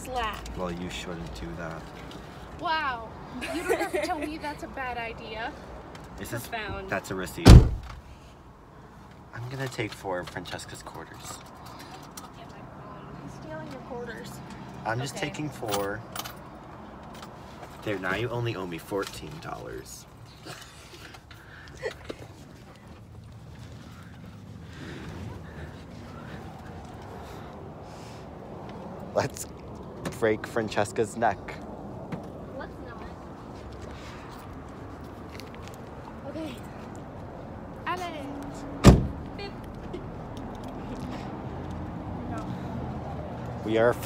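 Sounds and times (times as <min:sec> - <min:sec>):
car door slamming: 0:07.4 - 0:08.0, 0:38.8 - 0:39.2.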